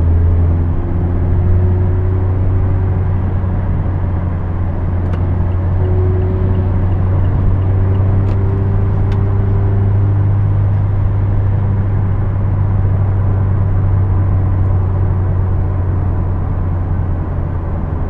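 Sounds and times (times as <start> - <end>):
car engine drone: 0.0 - 18.0
tyre and road noise: 0.0 - 18.0.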